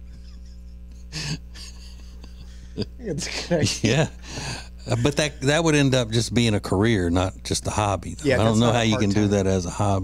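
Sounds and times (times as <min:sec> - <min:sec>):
man laughing breathily: 0:00.0 - 0:05.0
low electrical hum: 0:00.0 - 0:10.0.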